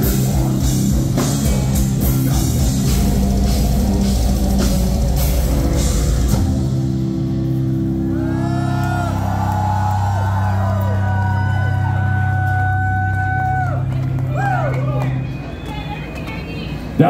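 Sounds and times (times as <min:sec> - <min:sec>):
metal band playing: 0:00.0 - 0:13.1
audience cheering: 0:08.0 - 0:16.0.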